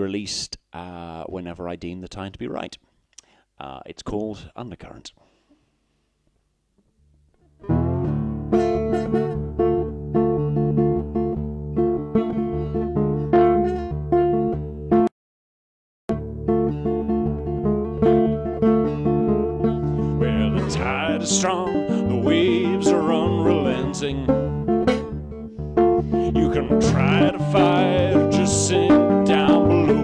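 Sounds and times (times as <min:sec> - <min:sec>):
acoustic guitar chords: 0:07.5 - 0:15.1, 0:16.1 - 0:30.0.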